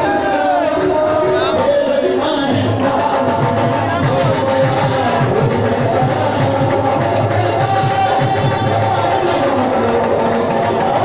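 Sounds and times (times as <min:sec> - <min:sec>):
qawwali music: 0:00.0 - 0:11.0
quick drum rhythm: 0:02.6 - 0:11.0.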